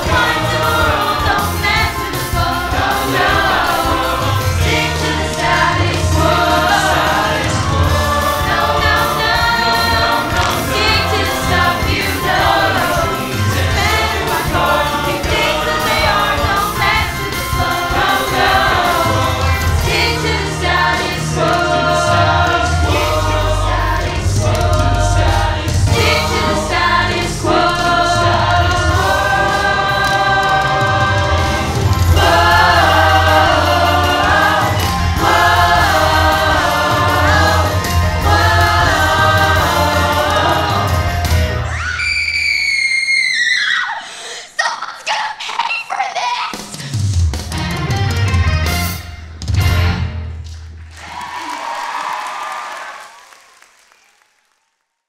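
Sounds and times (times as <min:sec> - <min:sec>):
cast singing in chorus: 0:00.0 - 0:41.4
backing music with steady bass: 0:00.0 - 0:41.7, 0:46.8 - 0:50.1.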